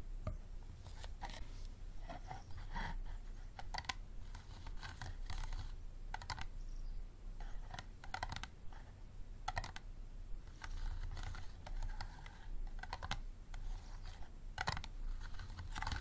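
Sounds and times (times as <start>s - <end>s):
nails scratching plastic bottle: 2.1s - 6.6s, 10.5s - 16.0s.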